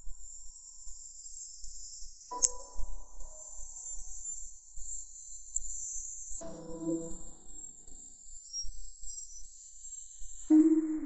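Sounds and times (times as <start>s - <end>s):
faint high-pitched chirping: 1.1s - 11.0s
background music: 6.4s - 7.7s, 10.5s - 11.0s.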